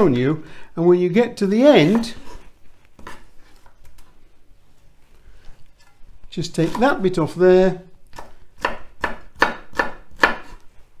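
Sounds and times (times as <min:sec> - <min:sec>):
knife cutting onion: 0:01.8 - 0:03.7, 0:05.8 - 0:07.2, 0:08.0 - 0:10.7.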